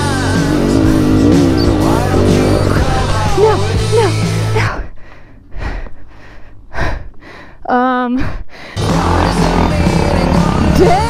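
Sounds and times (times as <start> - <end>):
background music: 0.0 - 5.0, 8.8 - 11.0
person breathing hard: 4.8 - 8.9.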